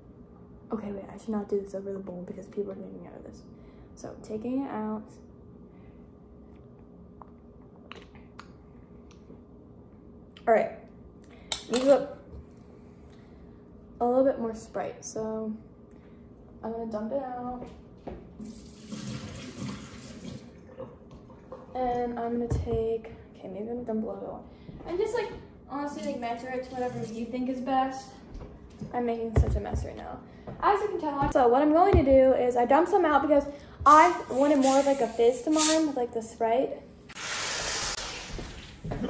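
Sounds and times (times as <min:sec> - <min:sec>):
soda fizzing from bottle: 0:18.4 - 0:20.5, 0:34.6 - 0:35.8, 0:37.2 - 0:38.8
liquid pouring into a sink: 0:18.4 - 0:21.7.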